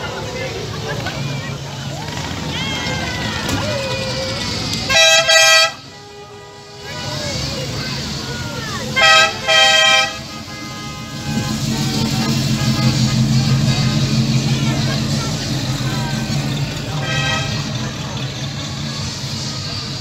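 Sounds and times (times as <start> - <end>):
car horn toots: 4.9 - 7.0, 9.0 - 14.3, 16.9 - 17.8
car engine rumbling past: 6.8 - 20.0.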